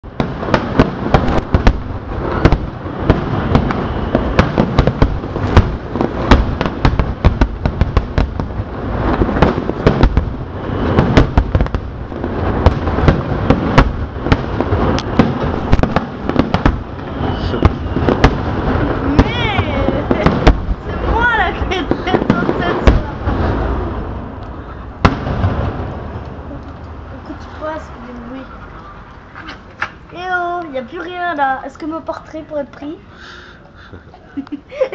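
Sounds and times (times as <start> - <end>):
fireworks whistling: 0.0 - 26.5
fireworks bangs: 0.0 - 33.0
fireworks crackling: 0.0 - 34.9.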